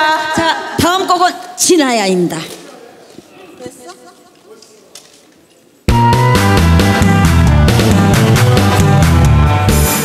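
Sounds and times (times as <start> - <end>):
backing track with bass and drums: 5.9 - 10.0.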